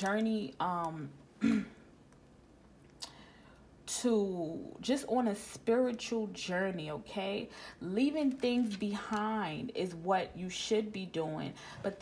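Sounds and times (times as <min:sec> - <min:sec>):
woman clearing her throat: 0:01.4 - 0:01.9.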